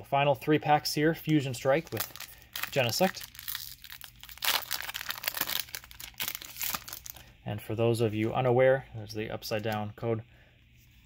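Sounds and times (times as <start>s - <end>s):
foil wrapper tearing and crinkling: 1.7s - 7.2s.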